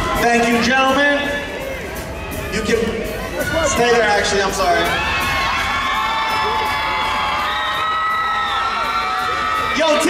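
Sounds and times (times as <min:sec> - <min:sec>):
crowd cheering and yelling: 0:00.0 - 0:10.0.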